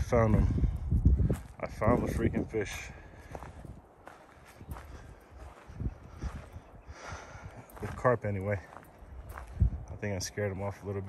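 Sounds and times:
footsteps on dirt: 0.0s - 11.0s.

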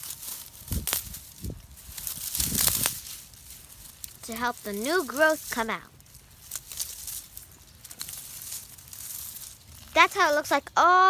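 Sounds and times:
small snaps of leaves: 0.0s - 9.9s
leaves crinkling and tearing: 0.0s - 10.8s.

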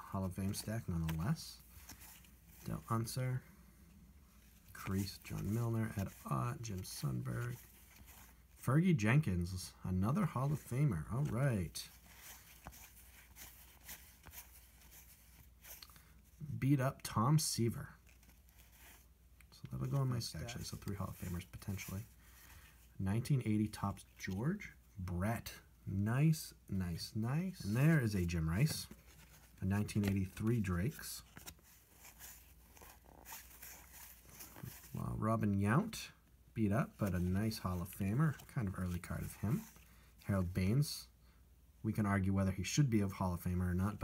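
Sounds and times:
cards flicking and rustling: 0.2s - 3.2s, 4.5s - 8.4s, 10.4s - 16.2s, 27.0s - 35.6s.

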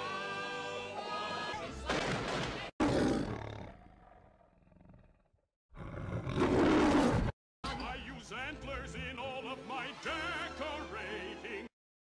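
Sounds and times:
lion roaring: 2.8s - 7.3s.

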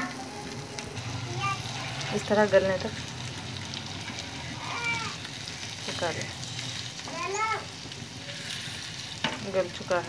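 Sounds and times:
meat sizzling in oil: 0.0s - 10.0s.

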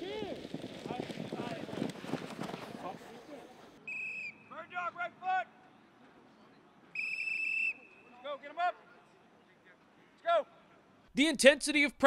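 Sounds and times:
whistle blast: 3.8s - 4.7s, 7.0s - 8.2s.

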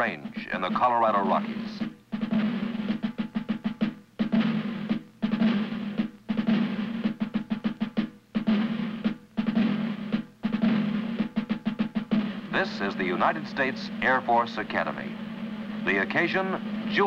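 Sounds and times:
snare drum strokes and rolls: 0.0s - 17.0s.

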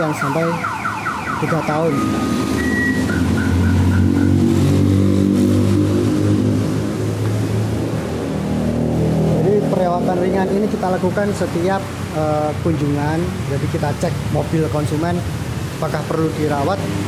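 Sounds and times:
car alarm siren: 0.0s - 4.8s
low drone of shifting pitch: 1.4s - 10.9s.

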